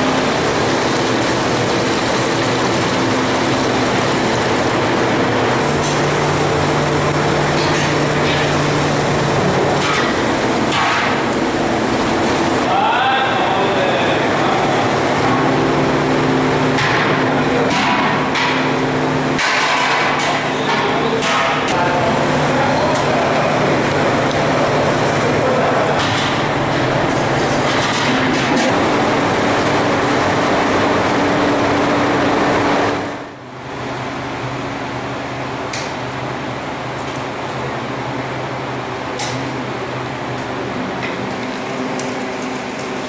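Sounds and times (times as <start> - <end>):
gas burners rushing: 0.0 - 33.4
utensils clanking on metal pots: 7.0 - 11.4, 19.3 - 25.2, 25.8 - 28.8.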